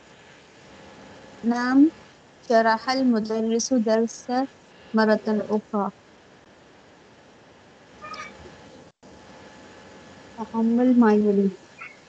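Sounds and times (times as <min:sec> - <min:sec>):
faint background hiss: 0:00.0 - 0:12.0
high-pitched cry: 0:08.0 - 0:08.4.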